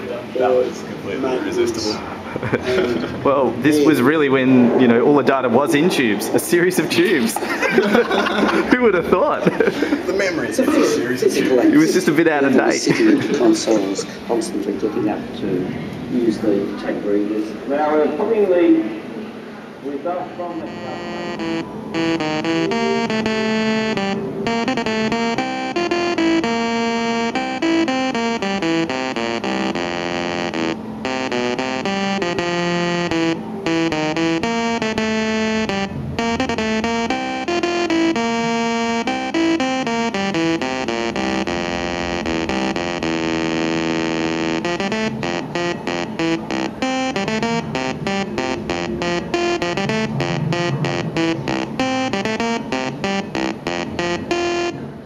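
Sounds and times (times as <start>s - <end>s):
buzzy electronic computer melody: 20.4s - 55.0s.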